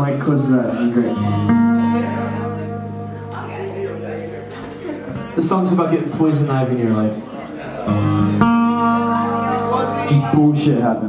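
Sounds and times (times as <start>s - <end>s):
acoustic guitar chord strummed: 0.0s - 7.2s, 7.8s - 11.0s.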